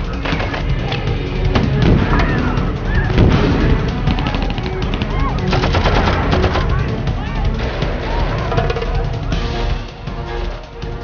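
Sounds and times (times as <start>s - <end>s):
men shouting: 0.1s - 11.0s
rapid automatic gunfire: 4.0s - 6.7s.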